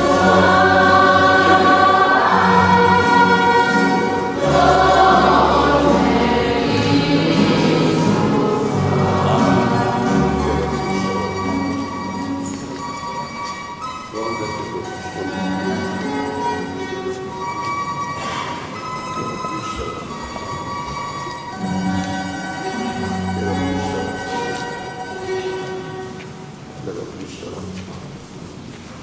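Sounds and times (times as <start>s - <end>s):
church organ playing hymn: 0.0s - 28.1s.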